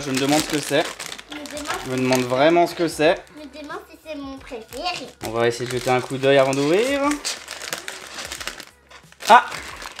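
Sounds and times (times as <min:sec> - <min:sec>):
plastic packet crinkling: 0:00.0 - 0:03.0, 0:04.9 - 0:10.0.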